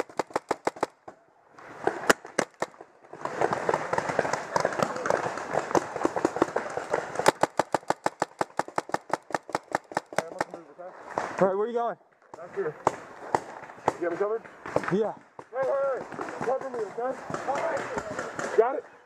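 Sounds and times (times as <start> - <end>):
paintball marker rapid firing: 0.0 - 1.0, 1.8 - 10.6, 15.6 - 18.7.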